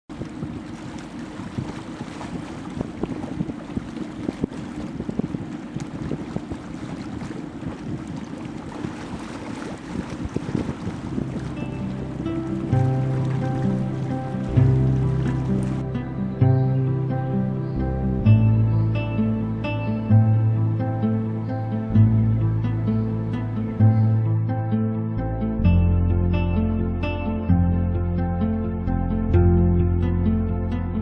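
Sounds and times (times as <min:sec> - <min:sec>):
water rumbling: 0:00.0 - 0:31.0
wind buffeting microphone: 0:00.1 - 0:24.4
music: 0:11.2 - 0:31.0.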